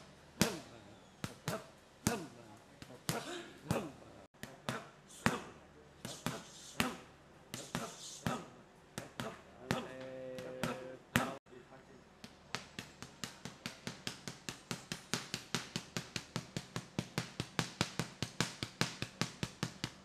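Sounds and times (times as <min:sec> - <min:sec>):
boxing gloves smacking pads: 0:00.4 - 0:11.4, 0:12.2 - 0:20.0.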